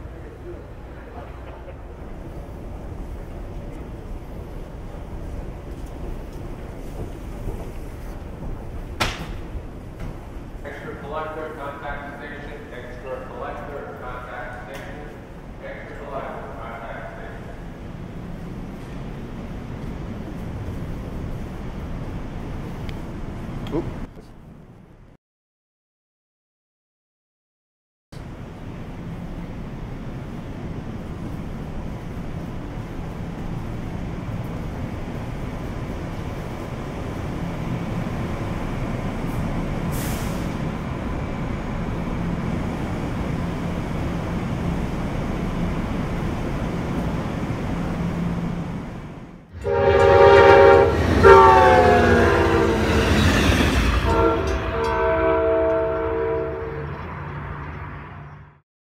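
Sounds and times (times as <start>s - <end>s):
trains idling at platform: 0.0s - 25.1s, 28.2s - 58.4s
multi-tone train horn: 49.5s - 57.2s.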